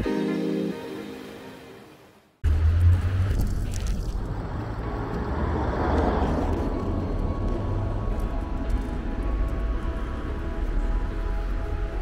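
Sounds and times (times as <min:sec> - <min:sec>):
intro music: 0:00.0 - 0:03.1
street traffic rumble: 0:02.4 - 0:12.0
vehicle passing: 0:02.5 - 0:12.0.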